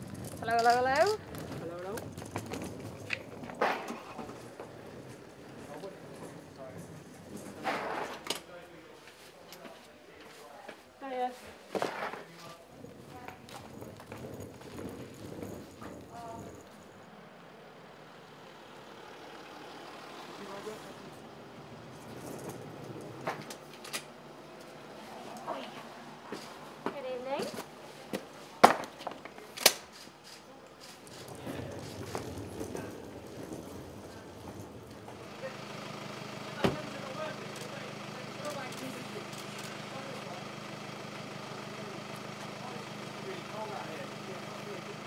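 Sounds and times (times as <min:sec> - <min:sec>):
car driving slowly: 0:00.0 - 0:45.0
faint voices: 0:29.2 - 0:35.8.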